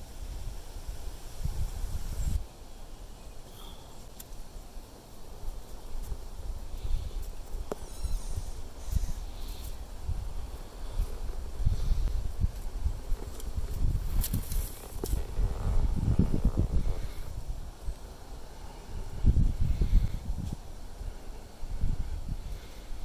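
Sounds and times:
wind gusting on microphone: 0.0s - 2.5s, 5.3s - 23.0s
leaves rustling: 0.0s - 23.0s.

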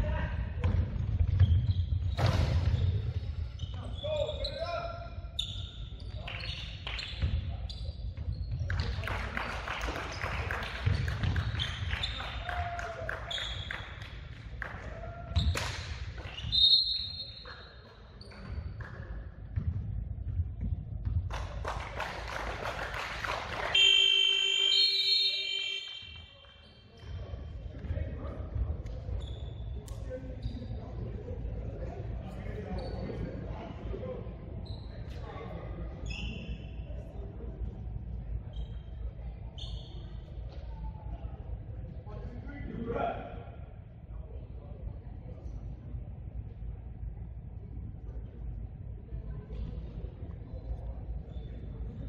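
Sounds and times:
sneaker squeaks: 0.6s - 9.0s, 10.0s - 12.6s, 13.3s - 14.1s, 15.3s - 19.0s, 23.7s - 27.5s, 28.9s - 31.0s, 32.3s - 33.3s, 34.6s - 36.9s, 38.4s - 40.6s, 51.1s - 52.0s
players' voices echoing: 2.4s - 29.2s
scoreboard horn: 23.8s - 26.0s.

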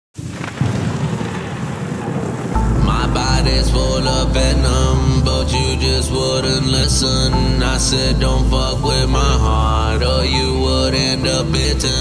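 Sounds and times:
thunder rumble: 0.2s - 9.8s.

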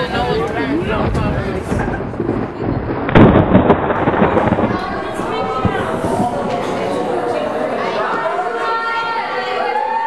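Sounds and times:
steady background noise: 0.0s - 10.0s
loud rumbling boom: 0.7s - 7.6s.

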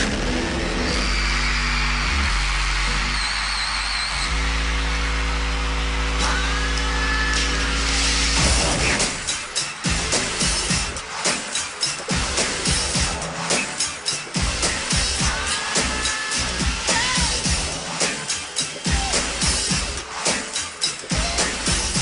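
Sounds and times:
synth bass and chords: 0.0s - 22.0s
pounding beat: 8.2s - 22.0s.

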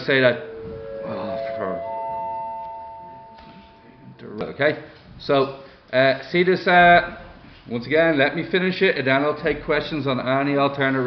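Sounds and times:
chime of rising ringing tones: 0.0s - 4.4s.

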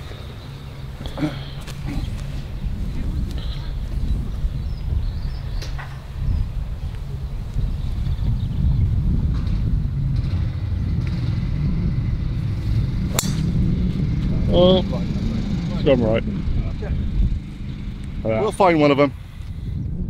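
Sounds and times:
steady low rumble: 0.0s - 20.0s
golf club striking ball: 13.1s - 13.8s.

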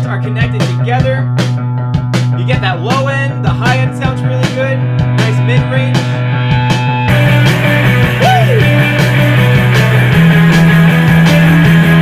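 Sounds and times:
rock music over loudspeakers: 0.0s - 12.0s.

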